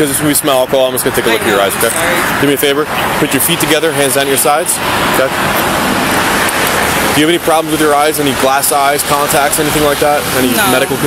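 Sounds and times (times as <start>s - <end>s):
highway traffic road noise: 0.0s - 11.0s.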